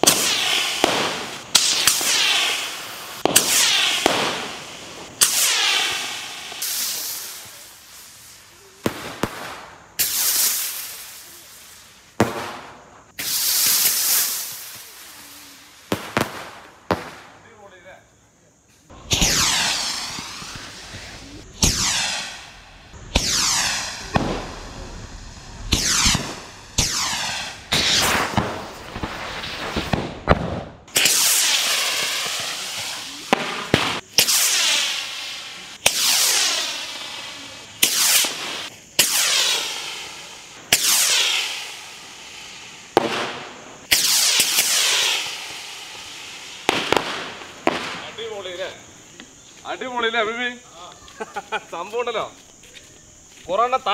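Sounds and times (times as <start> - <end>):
rockets firing with hissing whoosh: 0.0 - 17.9, 18.6 - 53.9.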